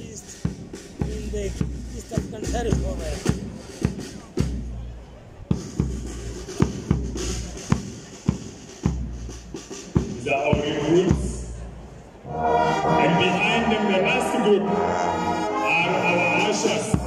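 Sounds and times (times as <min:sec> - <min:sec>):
drums keeping march beat: 0:00.0 - 0:17.0
full brass band playing: 0:05.7 - 0:17.0
brass chord: 0:12.2 - 0:17.0.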